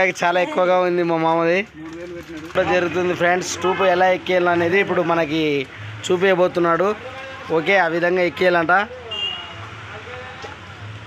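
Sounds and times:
man speaking: 0.0s - 9.2s.

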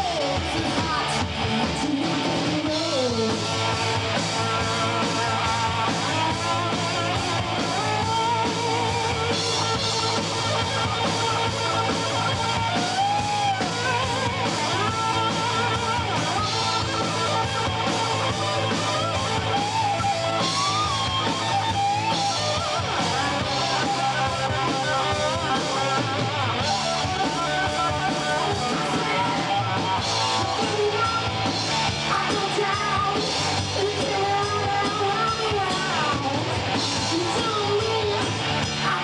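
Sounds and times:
distorted electric guitars: 0.0s - 39.0s
drum kit: 0.0s - 39.0s
live rock band playing: 0.0s - 39.0s.

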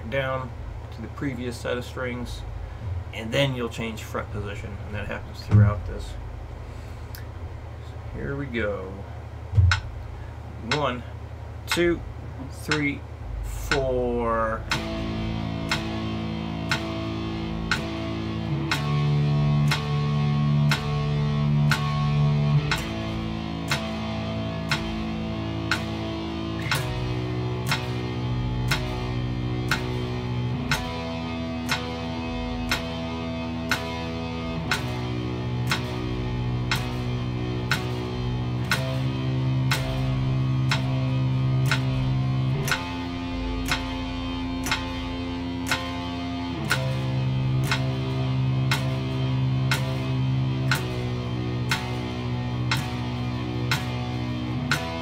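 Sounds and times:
electric guitar picking chords: 0.0s - 7.5s, 8.3s - 55.0s
metronome clicks: 9.6s - 9.9s, 10.7s - 10.9s, 11.7s - 12.0s, 12.7s - 13.0s, 13.6s - 13.9s, 14.6s - 55.0s.

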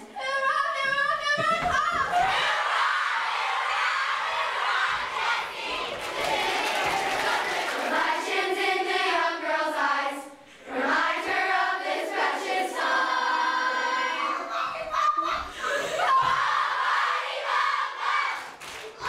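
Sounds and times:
group of girls singing: 0.0s - 19.0s
girls cheering and screaming: 14.0s - 17.1s.

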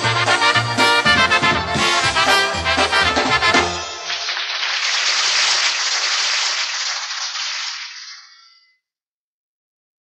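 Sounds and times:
audience applause: 3.1s - 8.2s.

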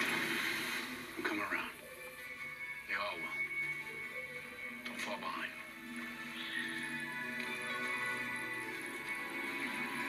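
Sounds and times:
drama score with held tones: 0.0s - 10.0s.

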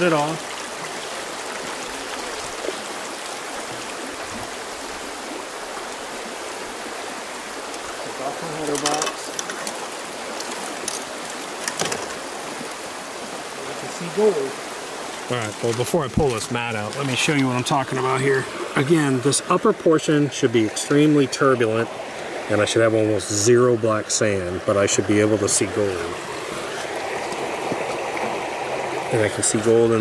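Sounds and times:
water running down a sluice: 0.0s - 30.0s.

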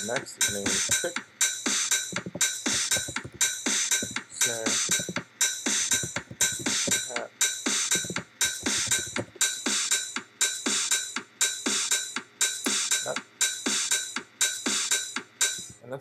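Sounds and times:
electronic drum loop: 0.0s - 11.0s, 11.7s - 15.8s.

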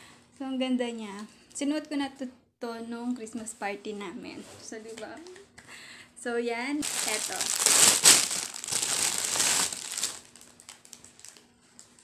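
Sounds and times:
packaging crinkling: 6.8s - 11.9s.

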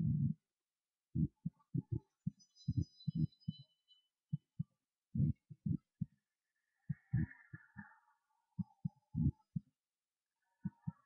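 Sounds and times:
deep low thuds: 9.1s - 9.4s.

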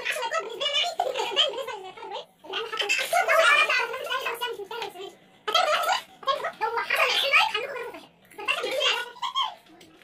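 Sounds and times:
boys talking: 0.0s - 10.0s.

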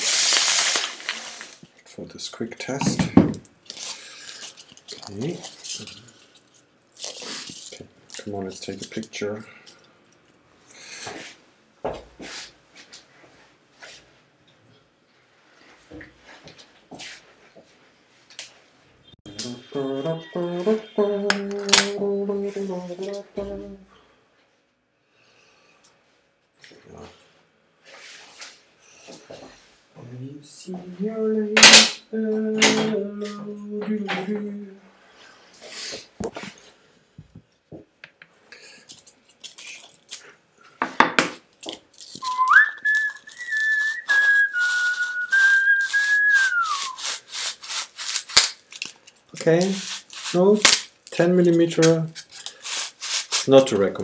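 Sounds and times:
man humming low notes: 19.3s - 23.9s
man whistling a tune: 42.2s - 47.1s
scratchy rubbing of styrofoam: 42.2s - 50.7s, 51.4s - 53.8s.

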